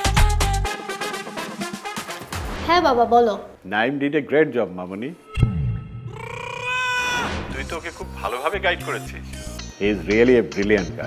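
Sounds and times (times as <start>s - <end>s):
sharp hit with low boom: 5.4s - 6.1s.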